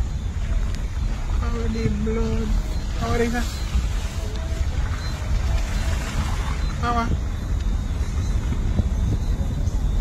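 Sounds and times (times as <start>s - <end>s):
wind and road noise: 0.0s - 10.0s.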